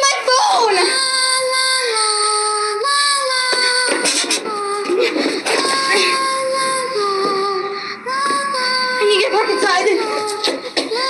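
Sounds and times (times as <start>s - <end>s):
high singing voice: 0.0s - 11.0s.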